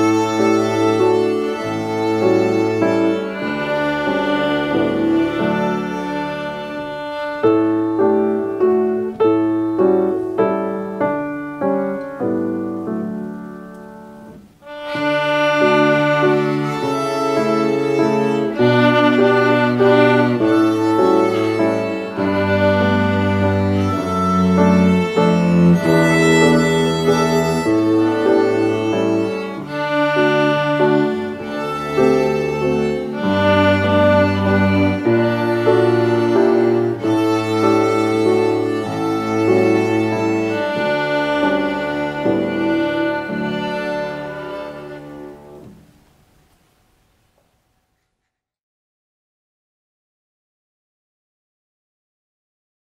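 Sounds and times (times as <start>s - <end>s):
two violins playing a waltz: 0.0s - 10.9s, 14.6s - 45.7s
backing accompaniment with bass: 0.0s - 47.1s.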